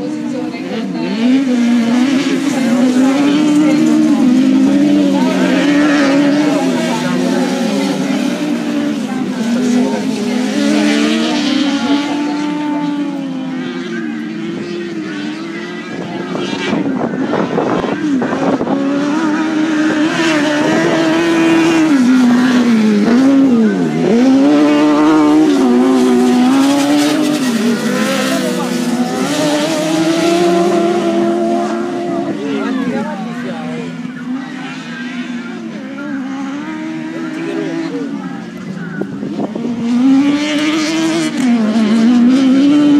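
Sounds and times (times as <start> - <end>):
race car engines revving: 0.0 - 42.9.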